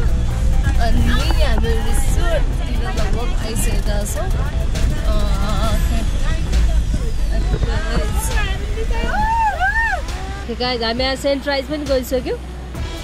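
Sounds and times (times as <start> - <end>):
people talking and calling out: 0.0 - 12.5
car cabin rumble: 0.0 - 13.0.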